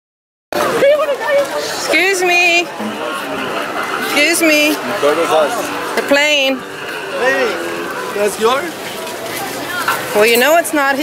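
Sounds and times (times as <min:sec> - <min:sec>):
people talking: 0:00.6 - 0:11.0.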